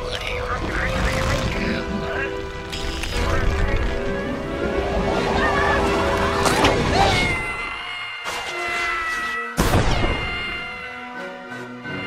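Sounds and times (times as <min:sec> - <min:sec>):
deep continuous rumble: 0:00.0 - 0:07.1.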